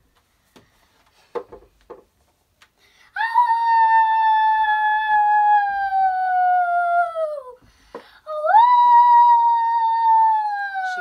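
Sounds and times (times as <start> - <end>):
girl imitating wolf howl: 3.2 - 7.6, 8.3 - 11.0.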